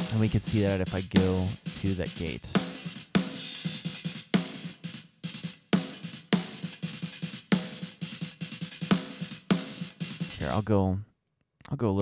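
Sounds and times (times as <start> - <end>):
fast bass drum notes: 0.0 - 4.8, 5.7 - 10.8
gated snare hits: 0.0 - 10.6
cymbals and hi-hat: 0.0 - 10.7
rock drum kit playing: 0.0 - 10.7.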